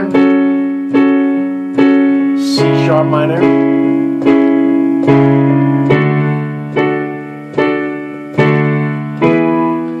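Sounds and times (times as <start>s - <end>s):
piano chords on digital keyboard: 0.0s - 10.0s.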